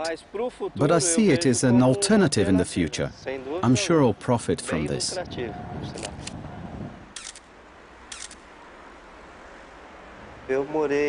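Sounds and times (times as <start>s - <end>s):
faint background noise: 0.0s - 11.0s
camera shutter clicks: 6.0s - 6.4s, 7.1s - 7.5s, 8.1s - 8.5s.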